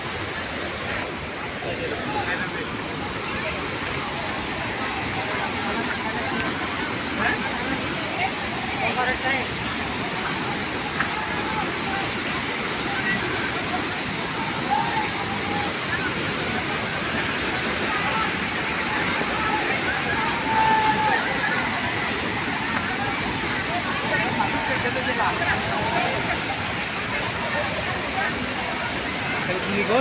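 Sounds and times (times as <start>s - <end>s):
faint crowd voices: 0.0s - 30.0s
waterfall roaring: 0.0s - 30.0s.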